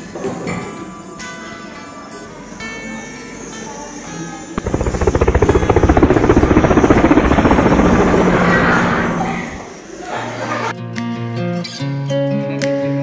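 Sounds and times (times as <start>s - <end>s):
rapid fluttering pulse: 4.6s - 9.8s.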